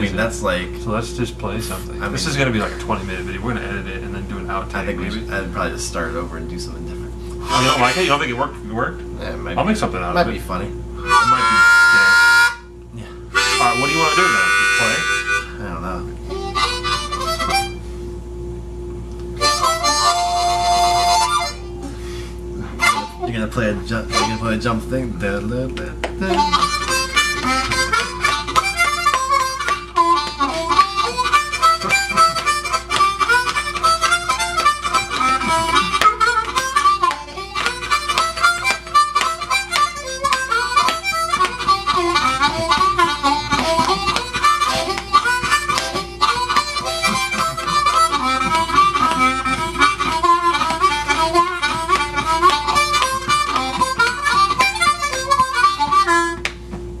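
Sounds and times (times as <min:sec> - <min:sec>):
blues harmonica playing: 0:01.6 - 0:06.6, 0:07.2 - 0:08.6, 0:09.2 - 0:18.0, 0:19.4 - 0:56.7.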